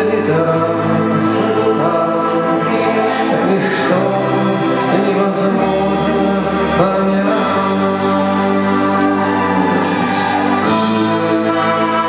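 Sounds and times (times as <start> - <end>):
man singing: 0.0 - 9.3
electric guitar: 0.0 - 12.0
live rock music: 0.0 - 12.0.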